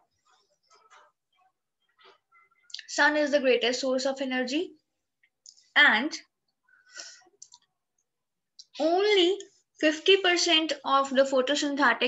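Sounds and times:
woman speaking: 2.7 - 4.8, 5.5 - 6.4, 8.6 - 12.0.

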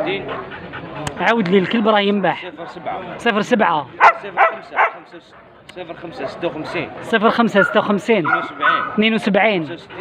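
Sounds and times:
dog barking: 2.2 - 3.0, 4.0 - 5.0, 6.2 - 9.1.

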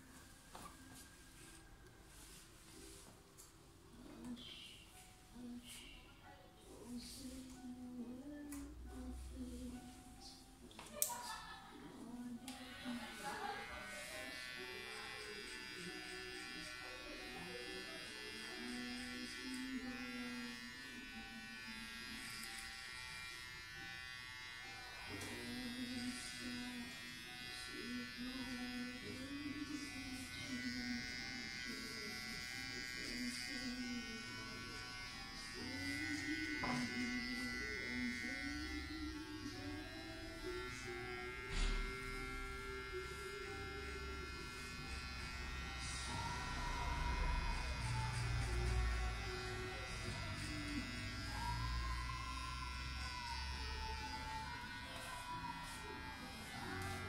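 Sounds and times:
electric hair clippers buzzing: 12.3 - 57.0.

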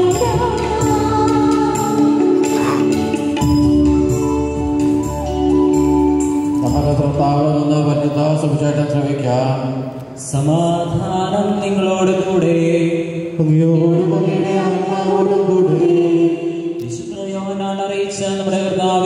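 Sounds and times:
sustained keyboard chords: 0.0 - 9.0
man chanting: 6.6 - 14.4.

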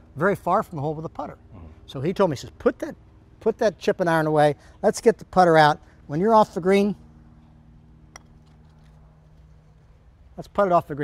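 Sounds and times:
faint steady hum: 0.0 - 11.0
putter striking golf ball: 8.1 - 10.0.

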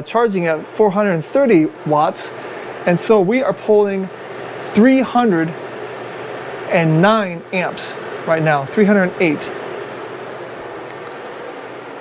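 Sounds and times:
space heater fan noise: 0.0 - 12.0.

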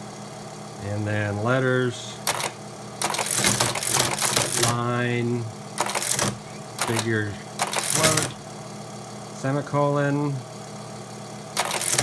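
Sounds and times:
teletype clattering: 2.2 - 5.0, 5.7 - 8.4, 11.6 - 12.0.

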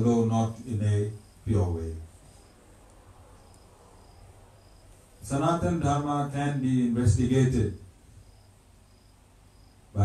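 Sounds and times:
cricket chirping: 0.0 - 10.0.

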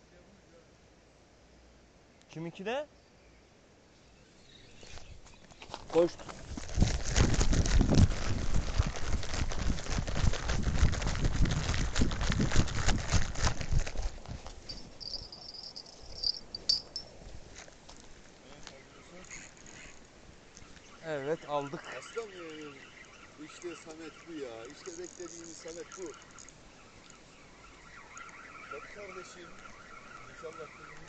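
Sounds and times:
footsteps running on gravel: 5.5 - 16.8.

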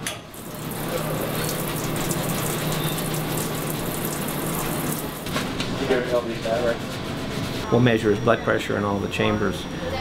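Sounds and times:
tap water running: 0.0 - 5.6.

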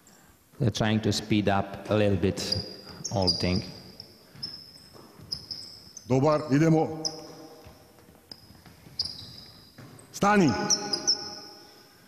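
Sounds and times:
sneakers squeaking on hardwood: 2.4 - 11.8
ball and feet knocks: 7.6 - 10.2.

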